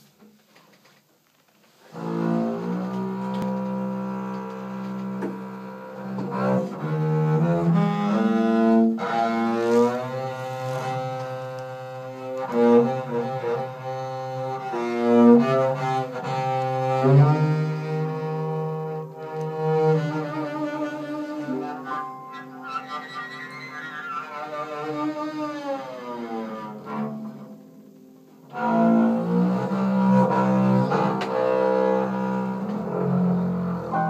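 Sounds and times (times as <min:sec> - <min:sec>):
bowed double bass: 0:01.9 - 0:34.0
piano: 0:02.0 - 0:34.0.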